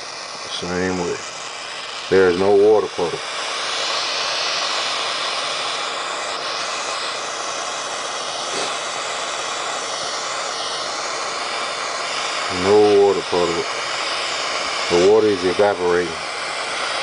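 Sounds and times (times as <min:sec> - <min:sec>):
propane torch hissing: 0:00.0 - 0:17.0.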